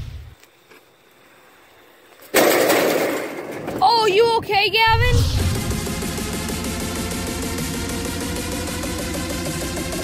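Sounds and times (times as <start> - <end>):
crash on metal bleachers: 2.3 - 3.8.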